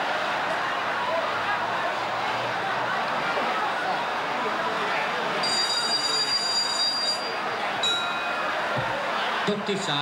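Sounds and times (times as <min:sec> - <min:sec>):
stadium crowd noise: 0:00.0 - 0:10.0
bell ringing: 0:05.4 - 0:08.6.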